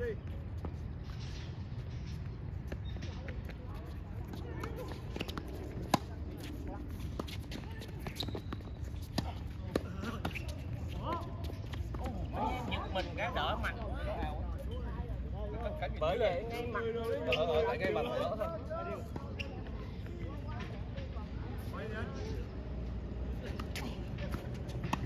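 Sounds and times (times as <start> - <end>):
voices: 2.8 - 25.0
tennis ball hits and bounces: 4.3 - 12.2, 23.4 - 25.0.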